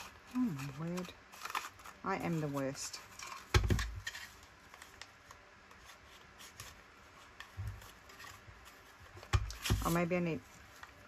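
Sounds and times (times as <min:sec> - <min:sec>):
paper strip scraping: 0:00.0 - 0:10.1.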